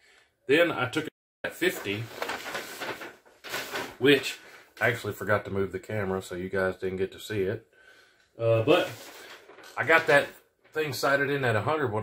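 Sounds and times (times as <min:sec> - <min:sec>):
paper rustling and crackling: 0:01.5 - 0:05.0, 0:08.7 - 0:11.0.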